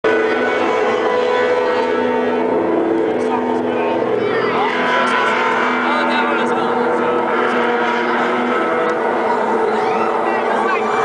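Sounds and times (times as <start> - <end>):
crowd voices: 0.0 - 11.0
rock band droning: 0.0 - 11.0.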